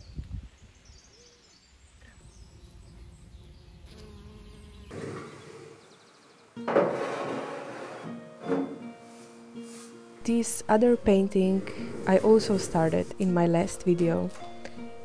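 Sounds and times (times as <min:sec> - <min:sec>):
bee buzzing: 0:02.0 - 0:06.1, 0:10.3 - 0:14.1.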